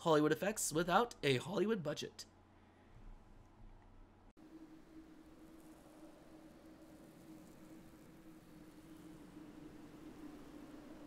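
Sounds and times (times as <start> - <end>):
low steady hum: 0.0 - 11.0
faint steady hiss: 4.4 - 11.0.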